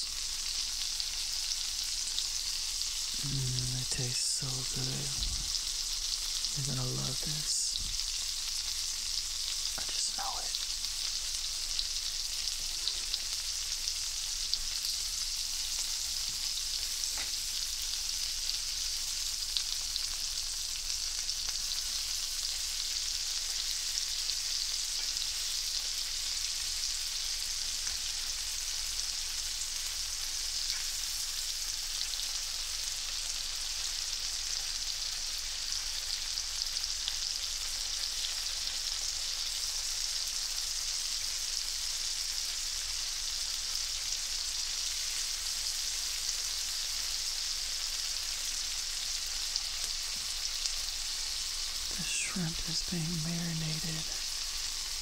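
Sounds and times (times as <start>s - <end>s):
food sizzling in a pan: 0.0s - 55.0s.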